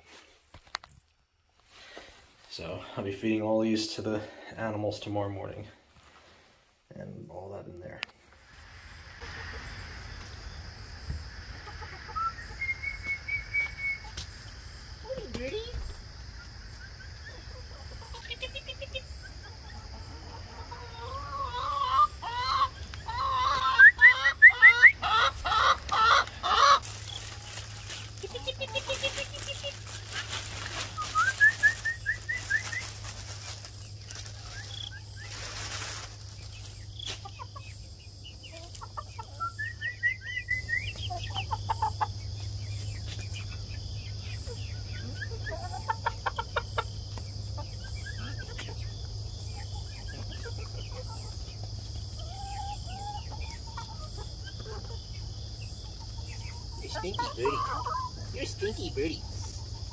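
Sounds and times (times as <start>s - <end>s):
chickens clucking and squawking: 1.4s - 59.9s.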